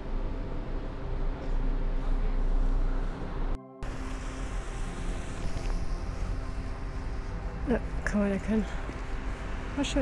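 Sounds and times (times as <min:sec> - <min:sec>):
street and traffic noise: 0:00.0 - 0:10.0.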